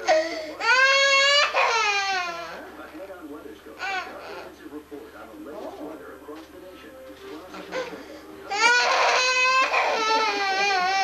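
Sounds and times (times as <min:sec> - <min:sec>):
toddler crying: 0:00.0 - 0:02.6, 0:03.8 - 0:04.5, 0:07.7 - 0:11.0.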